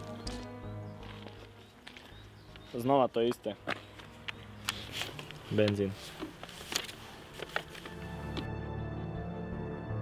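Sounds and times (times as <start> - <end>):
handling clicks and crackles: 3.7 - 8.5.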